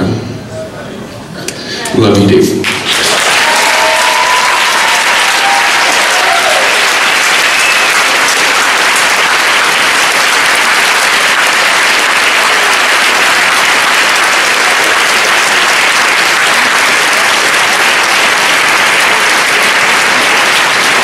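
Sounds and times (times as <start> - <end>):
audience applauding: 2.6 - 21.0.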